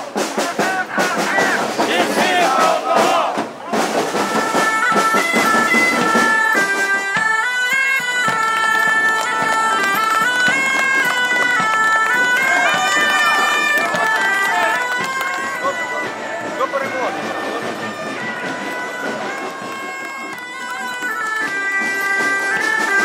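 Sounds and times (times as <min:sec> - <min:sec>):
crowd voices: 0:00.0 - 0:23.0
bagpipe melody over drone: 0:04.1 - 0:23.0.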